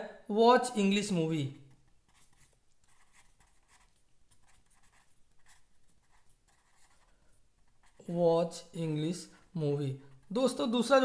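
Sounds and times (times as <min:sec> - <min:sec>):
pen scratching on paper: 0:01.9 - 0:08.2.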